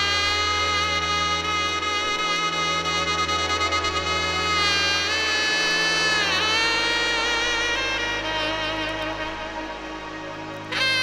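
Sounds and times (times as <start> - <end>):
buzzy lead instrument: 0.0 - 11.0
sustained bass note: 3.0 - 10.1.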